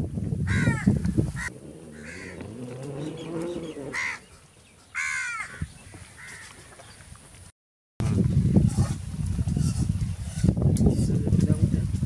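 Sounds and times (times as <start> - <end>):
bird calling: 0.5 - 7.1.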